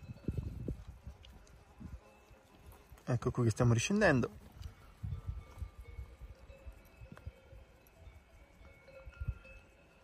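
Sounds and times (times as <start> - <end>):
footsteps on rocky trail: 0.0 - 3.1
faint bells tinkling: 0.0 - 10.0.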